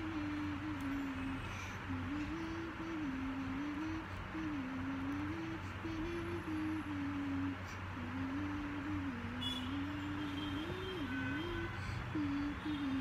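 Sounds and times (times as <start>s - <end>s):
low electrical hum: 0.0s - 13.0s
room hiss: 0.0s - 13.0s.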